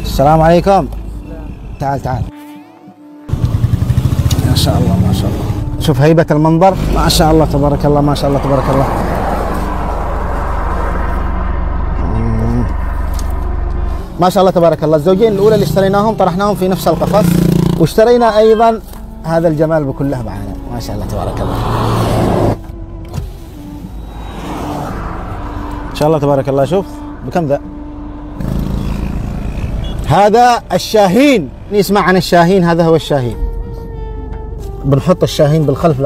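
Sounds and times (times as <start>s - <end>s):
car engine humming: 3.3s - 34.9s.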